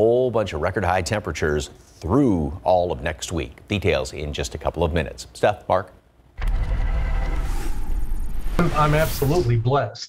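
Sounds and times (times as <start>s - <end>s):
rising sweep: 6.4s - 9.7s
rumbling whoosh: 6.4s - 9.8s.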